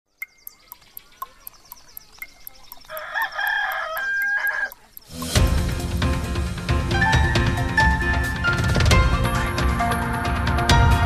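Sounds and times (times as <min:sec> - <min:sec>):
clock ticking: 0:00.1 - 0:06.0
rooster crowing: 0:02.9 - 0:04.8
loud theme music with a beat: 0:05.1 - 0:11.0.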